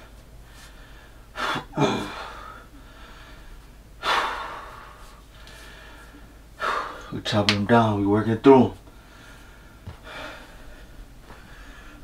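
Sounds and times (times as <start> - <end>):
man breathing hard: 0.4 - 7.2, 8.9 - 12.0.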